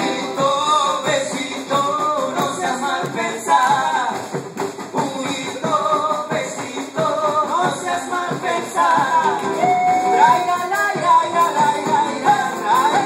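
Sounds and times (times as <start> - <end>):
bass drum beat: 0.0 - 13.0
electric guitar: 0.0 - 13.0
men singing: 0.0 - 13.0.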